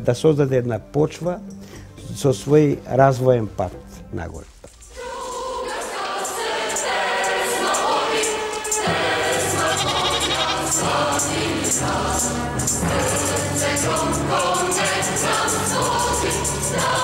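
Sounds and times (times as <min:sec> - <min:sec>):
instrumental backing music: 0:00.0 - 0:17.0
choir singing: 0:04.8 - 0:17.0.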